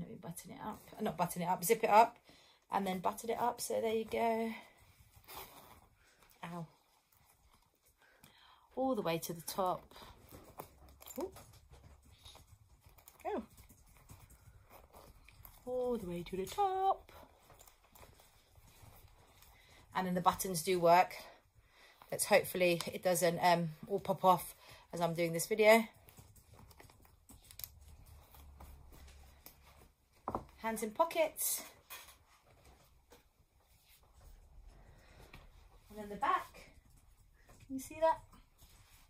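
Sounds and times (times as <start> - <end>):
clothing rustling: 2.8 - 8.3, 9.0 - 39.0.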